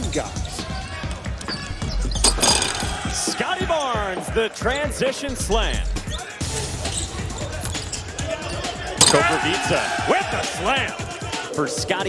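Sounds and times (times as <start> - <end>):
arena music: 0.0 - 12.0.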